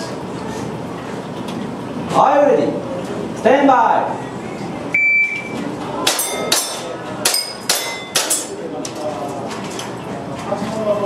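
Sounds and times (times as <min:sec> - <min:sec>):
shot timer beep: 0:04.9 - 0:05.6
steel target plate ringing: 0:06.1 - 0:08.6.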